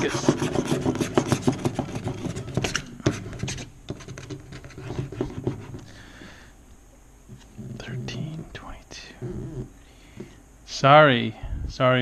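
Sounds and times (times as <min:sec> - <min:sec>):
scratching on lottery ticket: 0:00.0 - 0:05.9.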